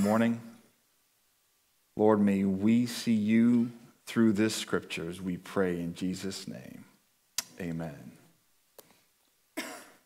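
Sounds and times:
short cough: 9.6 - 10.0.

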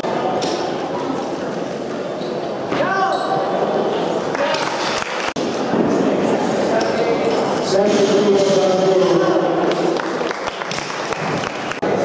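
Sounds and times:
crowd voices in hall: 0.0 - 12.0.

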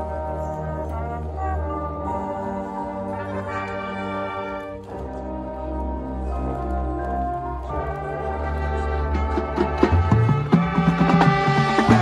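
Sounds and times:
brass section playing chords: 0.0 - 12.0.

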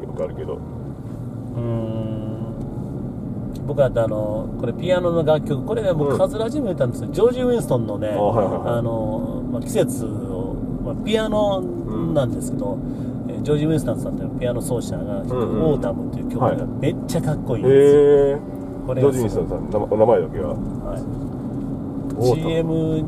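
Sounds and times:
road and engine rumble: 0.0 - 23.0
voices inside a car: 0.0 - 23.0.

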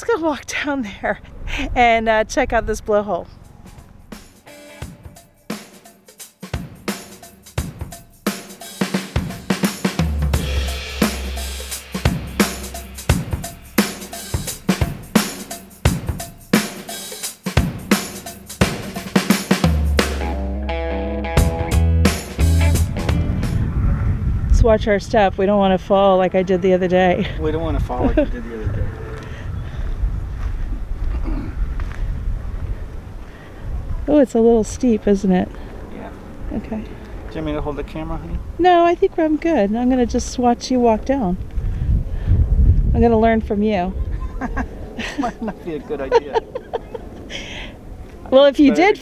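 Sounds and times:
wind buffeting microphone: 0.1 - 4.4, 22.6 - 49.0
drum-kit beat: 4.2 - 23.6
held low bass note: 20.1 - 27.0
footsteps on rocky dirt trail: 29.1 - 34.0.

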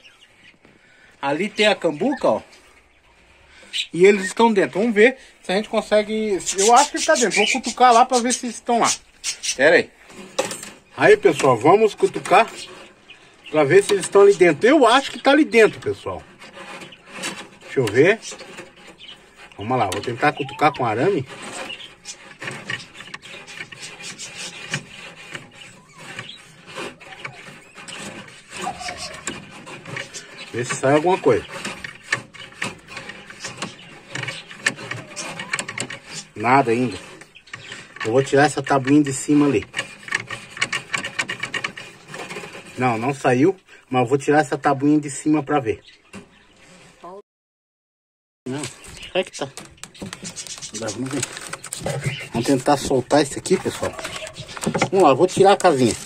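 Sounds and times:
wire scraping wooden box: 1.0 - 47.2, 48.5 - 56.0.

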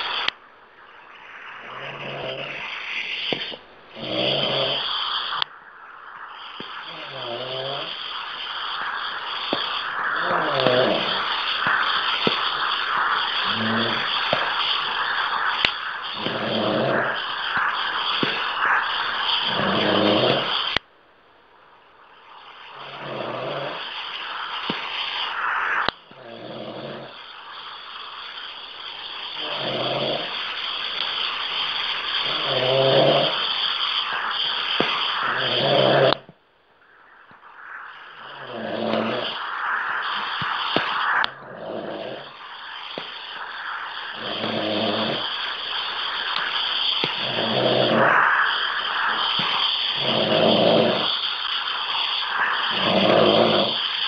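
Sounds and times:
phone line hiss: 0.0 - 54.0
person snoring: 1.6 - 2.8, 3.9 - 4.9, 6.9 - 8.0, 10.1 - 11.3, 13.4 - 14.1, 16.2 - 17.2, 19.5 - 20.5, 26.1 - 27.2, 29.4 - 30.3, 32.2 - 33.4, 35.2 - 36.3, 38.2 - 39.7, 41.4 - 42.4, 44.1 - 45.3, 47.2 - 48.4, 50.0 - 51.1, 52.7 - 53.8.

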